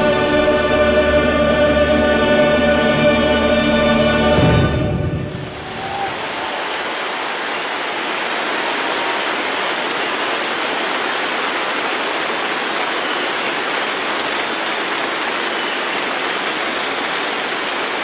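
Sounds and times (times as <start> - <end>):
audience applauding: 5.5 - 18.0.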